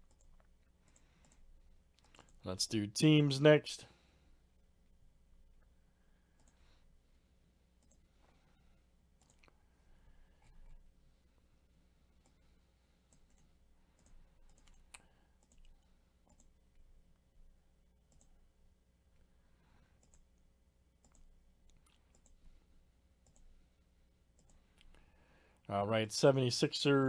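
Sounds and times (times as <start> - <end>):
computer mouse clicks: 0.0 - 2.4, 6.4 - 6.6, 7.8 - 8.1, 9.2 - 9.6, 13.1 - 16.6, 18.1 - 18.4, 20.0 - 20.4, 21.0 - 22.4, 23.2 - 23.5, 24.4 - 25.0
low steady hum: 0.0 - 27.0.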